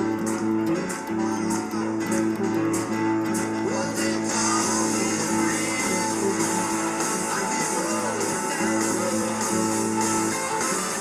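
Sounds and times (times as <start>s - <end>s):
electric guitar blues riff: 0.0s - 11.0s.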